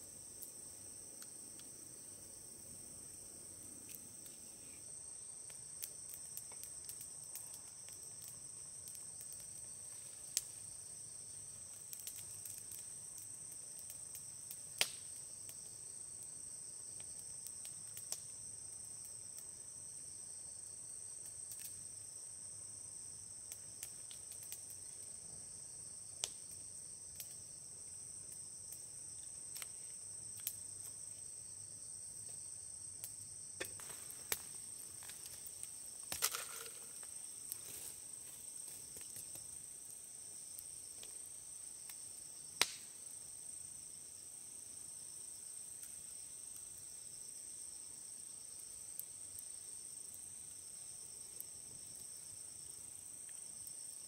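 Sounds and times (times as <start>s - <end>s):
high-pitched insect chorus: 0.0s - 54.0s
campfire crackling and popping: 0.2s - 2.0s, 2.8s - 20.0s, 21.0s - 22.3s, 22.9s - 25.2s, 26.1s - 31.3s, 32.2s - 43.2s.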